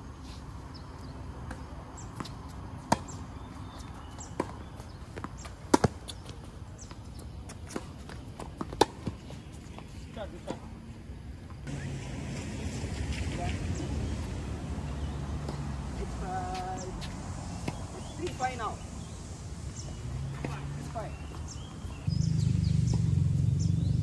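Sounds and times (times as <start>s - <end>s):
tennis ball bouncing on hard court: 1.5s - 3.2s, 3.8s - 6.2s, 6.8s - 10.6s, 15.0s - 15.7s, 16.4s - 18.6s
tennis ball struck by rackets: 5.2s - 6.2s, 17.6s - 18.6s.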